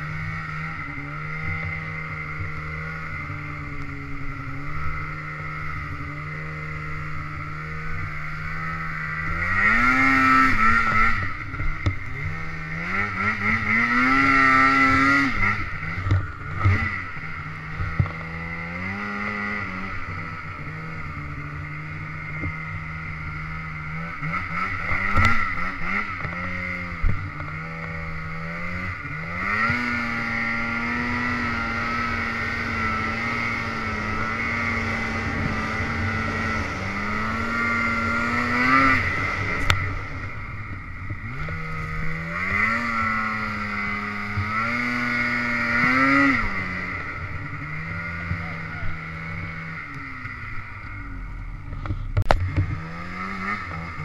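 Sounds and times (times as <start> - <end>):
snowmobile engine revving: 0.0 - 54.0.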